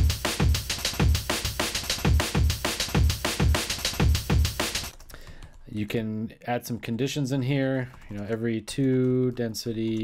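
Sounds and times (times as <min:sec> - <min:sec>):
chopped breakbeat drums: 0:00.0 - 0:04.9.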